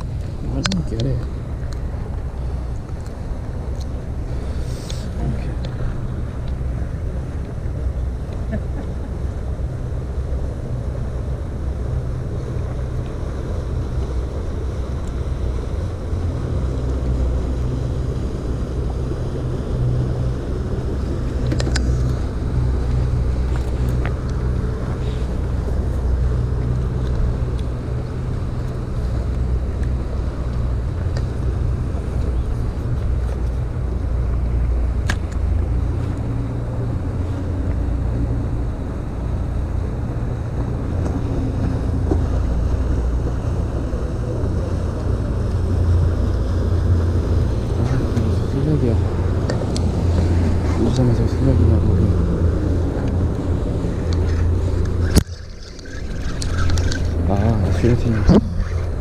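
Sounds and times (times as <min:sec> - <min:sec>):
faint clicks of fishing reel: 0:54.1 - 0:57.2.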